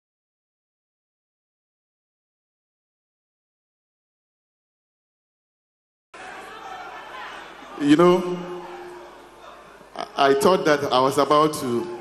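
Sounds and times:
audience chattering: 6.2s - 12.0s
man speaking loudly: 7.7s - 8.8s, 10.0s - 12.0s.

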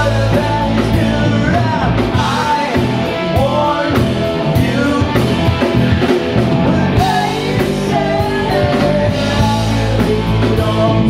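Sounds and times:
singer: 0.0s - 5.8s, 6.4s - 11.0s
drum kit: 0.0s - 11.0s
electric guitars: 0.0s - 11.0s.

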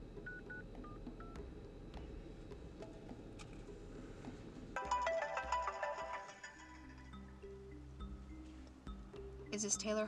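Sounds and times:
phone ringtone melody: 4.8s - 8.6s.

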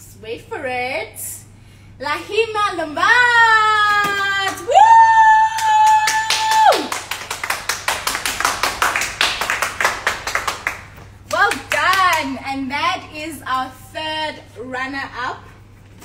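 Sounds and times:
hands clapping quickly: 5.5s - 12.2s.

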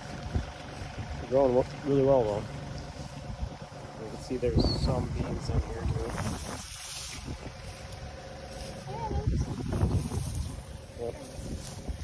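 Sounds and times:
wind buffeting microphone: 0.0s - 1.3s, 2.8s - 8.1s, 8.7s - 12.0s
plants rustling: 6.0s - 12.0s.

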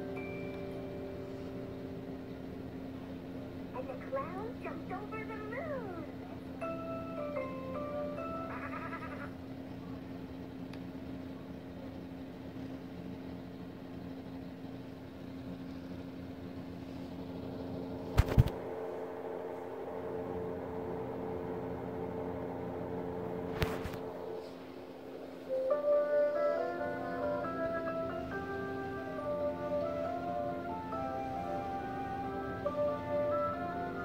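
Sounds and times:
chiming melody through small speakers: 0.0s - 2.2s, 6.5s - 8.5s, 25.5s - 34.0s
steady held tones: 0.0s - 10.3s, 18.6s - 34.0s.

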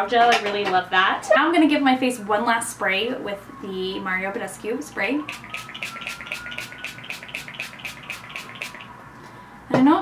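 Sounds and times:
spray bottle hissing pumps: 5.3s - 8.9s.

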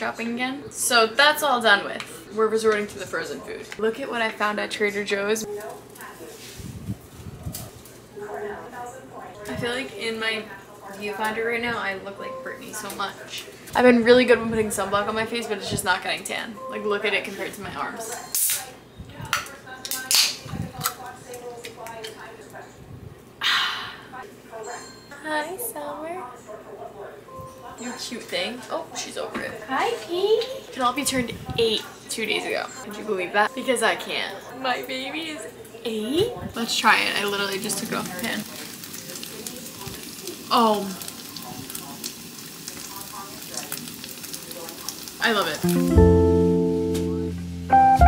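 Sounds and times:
food sizzling in a frying pan: 36.7s - 46.9s.

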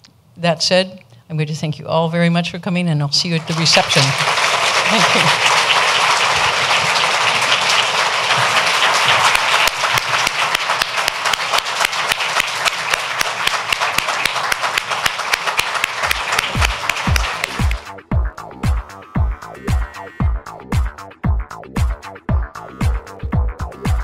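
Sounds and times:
audience applauding: 3.4s - 17.9s
electronic music with kick drum: 16.5s - 24.0s.

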